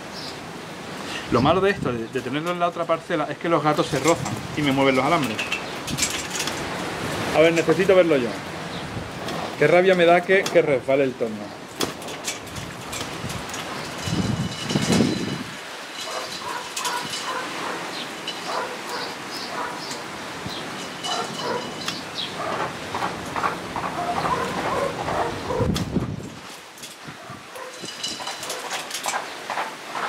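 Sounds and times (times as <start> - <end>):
leaves and twigs rustling: 0.0 - 30.0.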